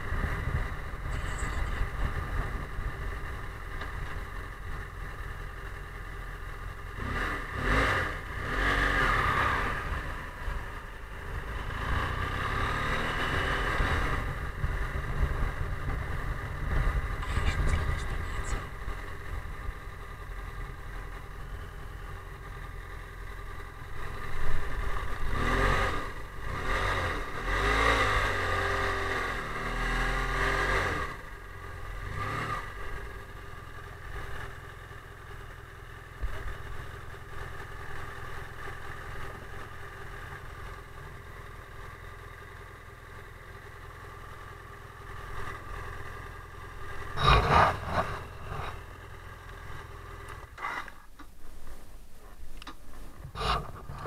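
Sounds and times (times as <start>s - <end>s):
motorcycle engine running: 0.0s - 54.0s
wind and road noise: 0.0s - 54.0s
muffled voices talking: 17.2s - 18.7s.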